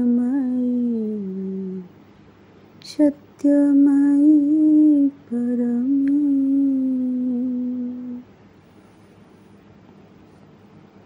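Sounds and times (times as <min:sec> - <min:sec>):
woman chanting: 0:00.0 - 0:02.0, 0:02.8 - 0:08.3.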